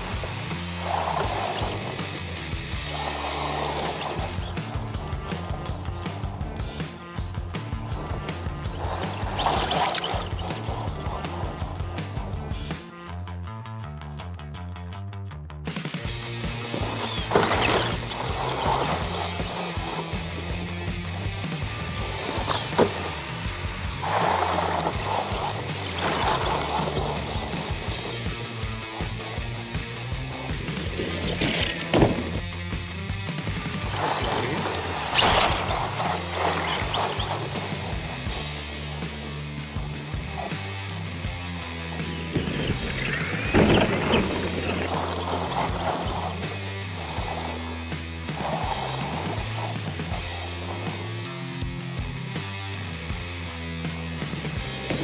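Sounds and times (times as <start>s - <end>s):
background music with bass line: 0.0s - 55.0s.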